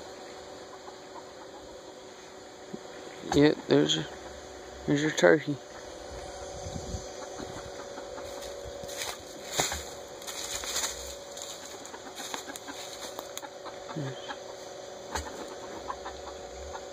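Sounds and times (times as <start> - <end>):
steady low hum: 0.0 - 16.9
poultry moving about: 7.2 - 16.8
scratchy rustles: 8.2 - 13.4.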